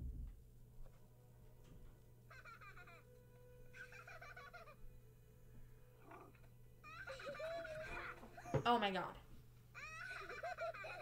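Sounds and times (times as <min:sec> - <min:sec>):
low hum: 0:00.0 - 0:03.8.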